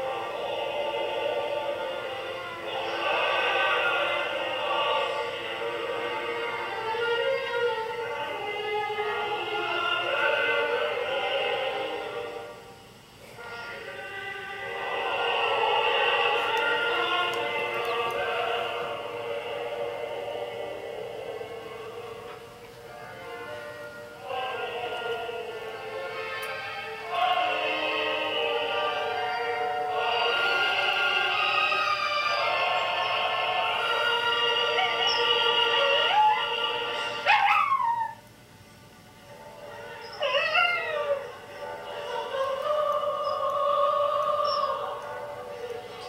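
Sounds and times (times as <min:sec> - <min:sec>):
opera singing: 0:00.0 - 0:38.2, 0:39.4 - 0:46.0
dogs howling: 0:27.2 - 0:38.3, 0:39.7 - 0:45.0.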